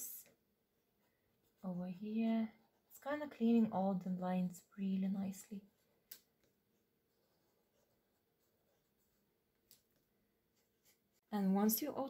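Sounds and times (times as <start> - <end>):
marker scratching on paper: 7.1 - 9.3.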